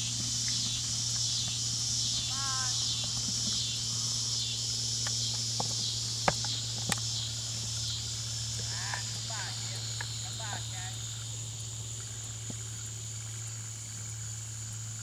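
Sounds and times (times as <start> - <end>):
insects trilling: 0.0 - 15.0
low hum: 0.0 - 15.0.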